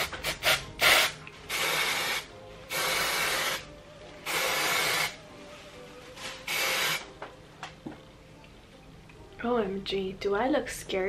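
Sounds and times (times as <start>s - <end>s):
aerosol spray hissing: 0.2s - 5.2s, 6.5s - 7.1s.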